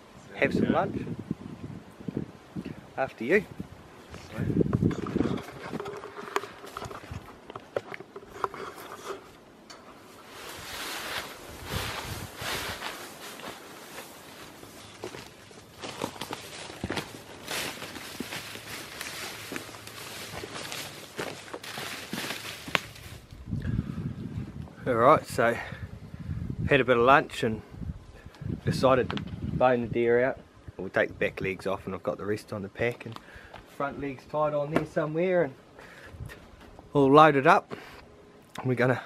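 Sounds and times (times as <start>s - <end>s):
vegetation rustling: 3.2s - 23.6s
footsteps crunching through undergrowth: 4.0s - 23.4s.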